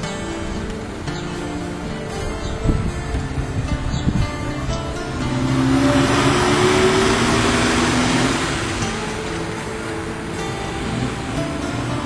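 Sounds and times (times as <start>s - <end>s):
music playing: 0.0s - 12.0s
vehicle passing by: 5.0s - 9.9s.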